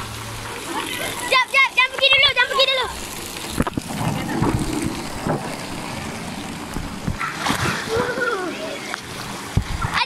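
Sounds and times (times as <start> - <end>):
water rushing down slide: 0.0 - 10.0.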